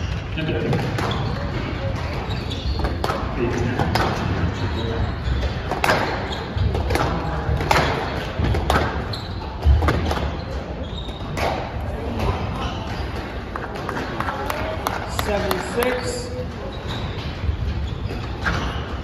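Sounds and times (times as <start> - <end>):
spectators chattering: 0.0 - 19.0
squash ball cracking off racquets: 5.4 - 10.4.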